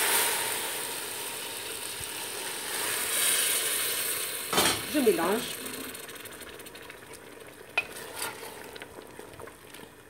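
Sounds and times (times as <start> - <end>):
liquid sizzling: 0.0 - 10.0
wooden spoon stirring in metal pot: 7.8 - 9.0.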